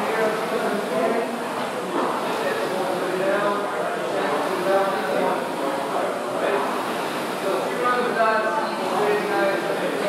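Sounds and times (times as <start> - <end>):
rowing machine fan whir: 0.0 - 10.0.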